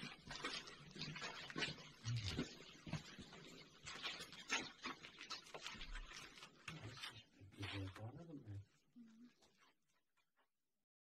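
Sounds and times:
shuffling footsteps on stone floor: 0:00.0 - 0:10.5.

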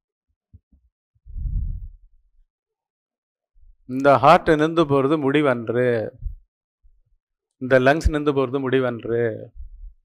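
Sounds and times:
breath puffing on microphone: 0:01.3 - 0:02.0
muffled low rumble: 0:01.3 - 0:02.1.

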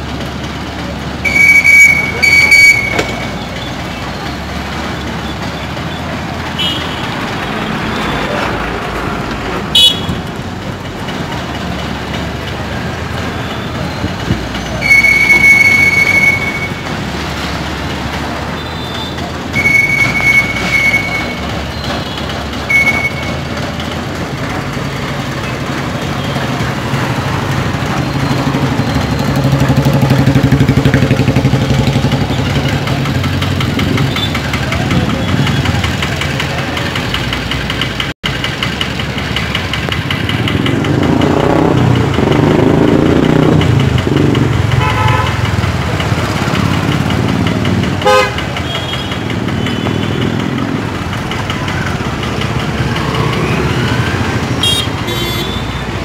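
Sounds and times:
motorcycles and scooters passing: 0:23.5 - 0:56.0.

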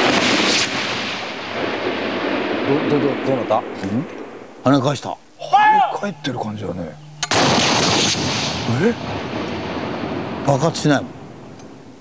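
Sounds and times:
rocket launcher blast: 0:00.0 - 0:03.5, 0:07.2 - 0:10.6.

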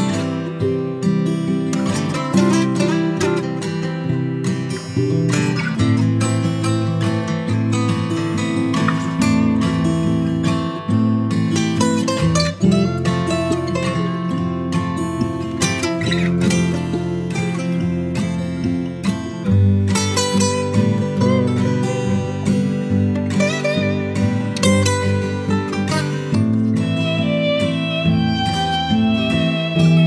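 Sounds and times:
acoustic guitar music: 0:00.0 - 0:30.0.

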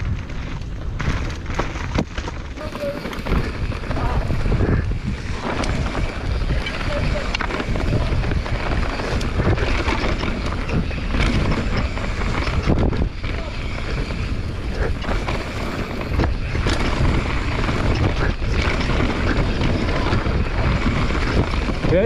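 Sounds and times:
bike rattling over bumps: 0:00.0 - 0:22.0
tyres on dirt: 0:00.0 - 0:22.0
wind buffeting microphone: 0:00.0 - 0:22.0.

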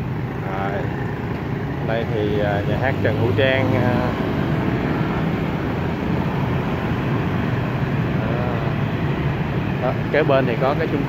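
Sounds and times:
motorbikes and cars passing: 0:00.0 - 0:11.0.

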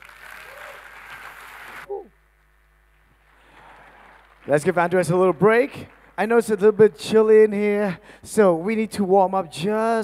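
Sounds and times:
audience applauding: 0:00.0 - 0:01.9, 0:03.1 - 0:06.2.

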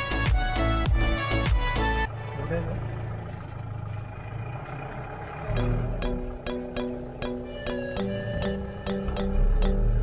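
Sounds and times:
background music: 0:00.0 - 0:03.4, 0:05.5 - 0:10.0
vehicle engine hum and rumble: 0:00.0 - 0:10.0.

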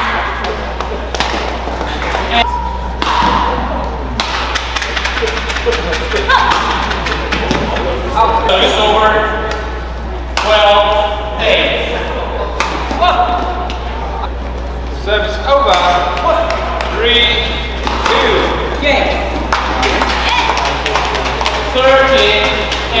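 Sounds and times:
racket striking shuttlecock: 0:00.4 - 0:02.3, 0:02.9 - 0:07.7, 0:12.5 - 0:13.8, 0:17.7 - 0:18.7.

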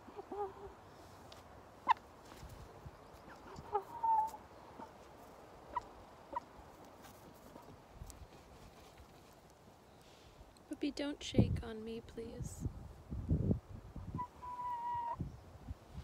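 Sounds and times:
hen calling: 0:00.0 - 0:00.8, 0:03.1 - 0:05.0, 0:14.1 - 0:15.3.

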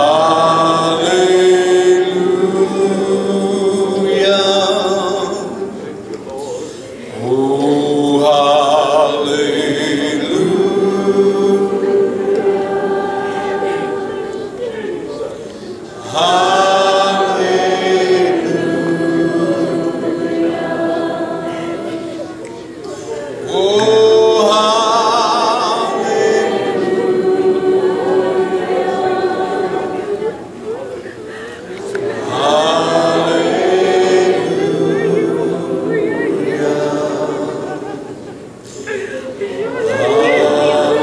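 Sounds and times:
congregation singing: 0:00.0 - 0:41.0.

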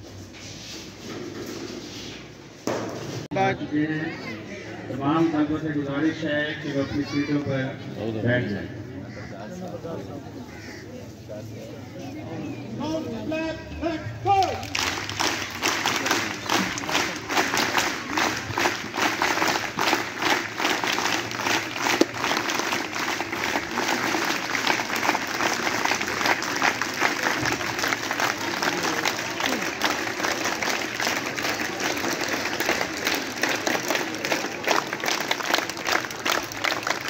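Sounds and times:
crowd clapping: 0:14.3 - 0:37.0.

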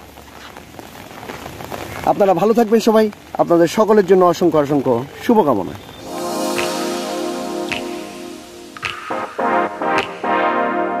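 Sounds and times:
rain falling: 0:00.0 - 0:10.2.

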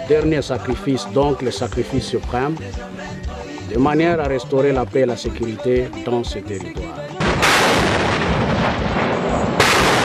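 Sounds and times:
rocket launcher firing salvo: 0:07.2 - 0:10.0.

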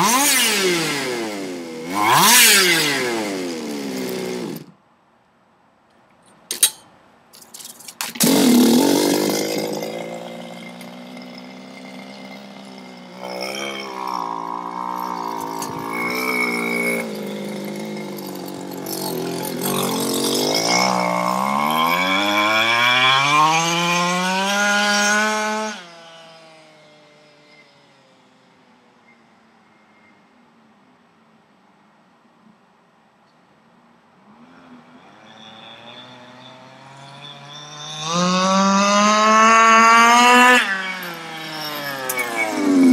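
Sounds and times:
scooter engine revving: 0:00.0 - 0:04.7, 0:08.0 - 0:27.4, 0:34.4 - 0:42.9.

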